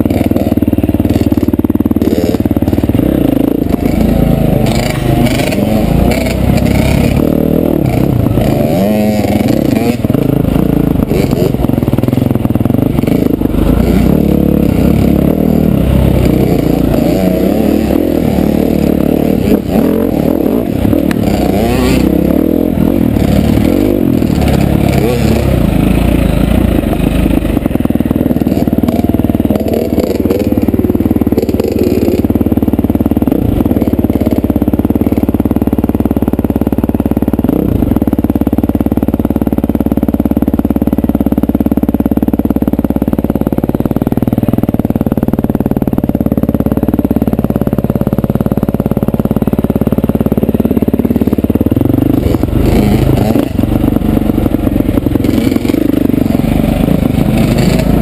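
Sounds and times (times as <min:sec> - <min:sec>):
dirt bike engine revving: 0:00.0 - 0:39.7, 0:46.2 - 0:58.0.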